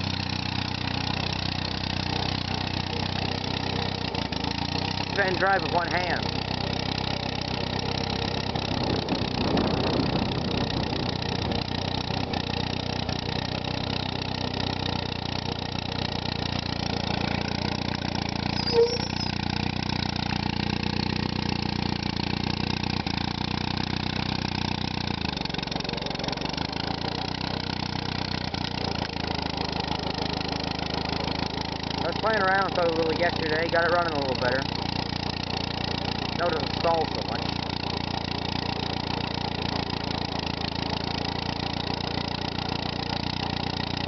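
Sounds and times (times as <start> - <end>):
tractor engine running: 0.0 - 44.0.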